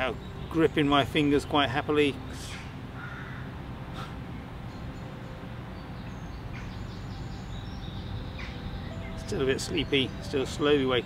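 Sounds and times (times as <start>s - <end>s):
woodland background noise: 0.0s - 11.0s.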